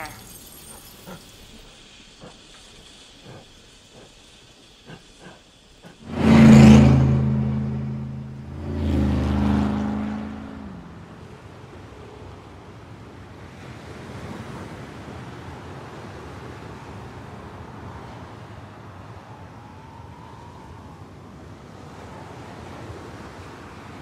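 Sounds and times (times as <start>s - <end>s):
car engine rumble: 5.9s - 12.8s.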